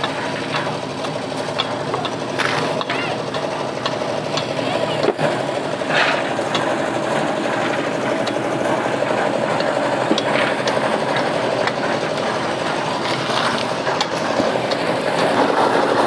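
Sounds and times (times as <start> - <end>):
small engine running: 0.0 - 16.0.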